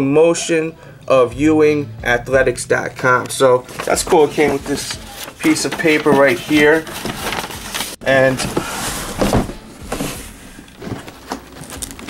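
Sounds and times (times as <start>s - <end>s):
cardboard box scraping: 3.7s - 12.0s.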